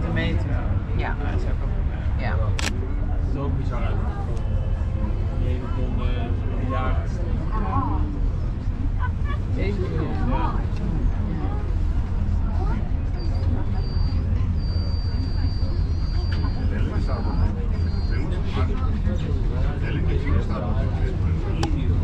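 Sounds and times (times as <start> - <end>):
low rumble of moving cabin: 0.0 - 22.0
passengers talking quietly: 0.0 - 22.0.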